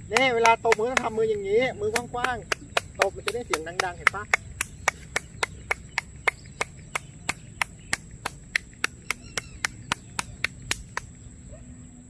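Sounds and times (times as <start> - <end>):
person clapping hands: 0.0 - 11.2.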